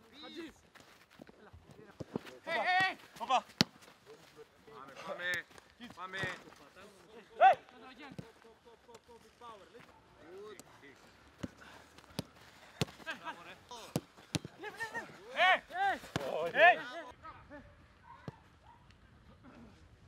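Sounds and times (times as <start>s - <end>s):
footballs being kicked: 0.7s - 4.1s, 4.9s - 6.6s, 9.8s - 16.8s
players shouting: 2.4s - 3.8s, 7.2s - 7.8s, 11.4s - 17.1s.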